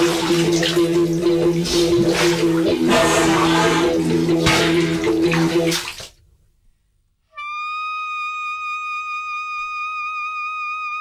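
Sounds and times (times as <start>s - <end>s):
bath water splashing: 0.0s - 6.3s.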